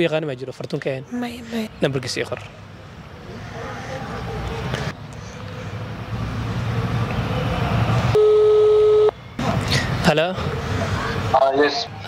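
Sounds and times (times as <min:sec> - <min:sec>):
phone ring-back tone: 0:08.2 - 0:09.2.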